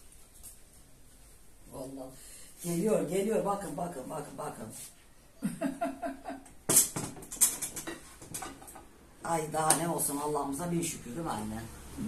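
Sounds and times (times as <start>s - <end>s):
woman laughing: 5.4s - 6.6s.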